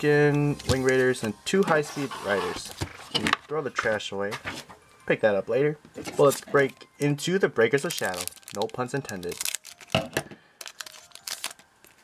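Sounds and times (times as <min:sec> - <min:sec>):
foil wrapper crinkling: 0:07.7 - 0:12.0.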